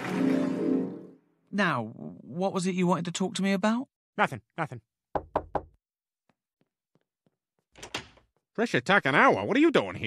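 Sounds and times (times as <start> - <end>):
knocks on door: 5.1 - 5.8
faint footsteps: 6.3 - 8.5.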